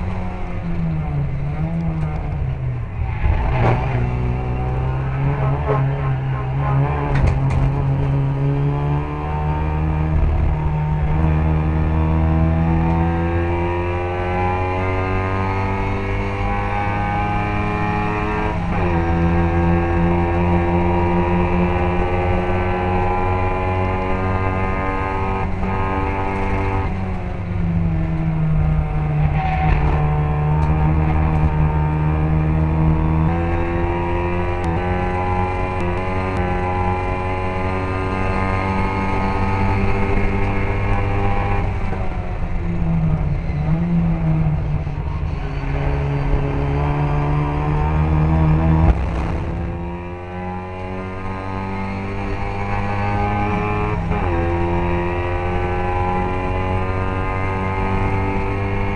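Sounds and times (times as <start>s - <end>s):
racing car engine at high revs: 0.0s - 58.9s
engine sharp burst: 48.8s - 50.1s.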